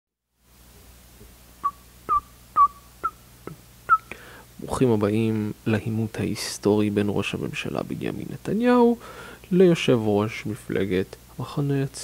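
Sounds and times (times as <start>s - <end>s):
faint steady hum: 0.3s - 12.0s
short high-pitched chirps: 1.6s - 3.2s.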